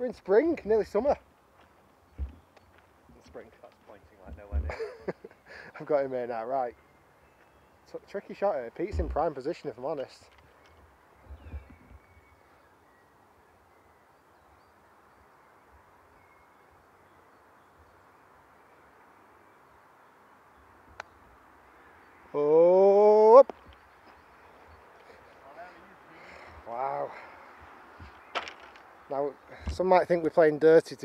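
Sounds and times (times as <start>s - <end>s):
person calling out: 22.4s - 23.4s.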